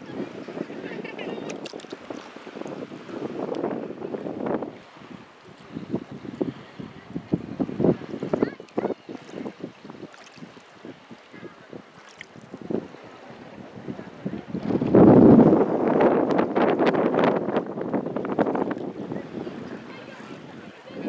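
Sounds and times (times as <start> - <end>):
sea waves lapping and splashing: 0.0 - 21.0
wind buffeting microphone: 0.0 - 21.0.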